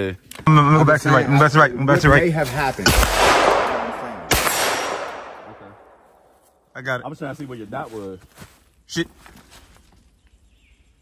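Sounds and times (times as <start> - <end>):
pistol shot with echo: 2.8 - 6.0.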